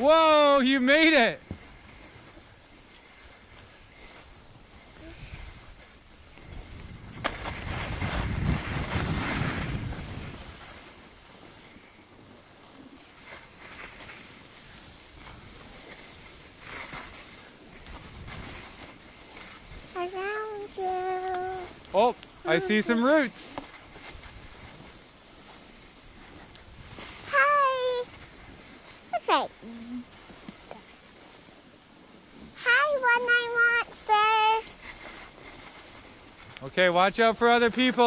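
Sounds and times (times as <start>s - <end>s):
skis sliding over snow: 0.0s - 38.0s.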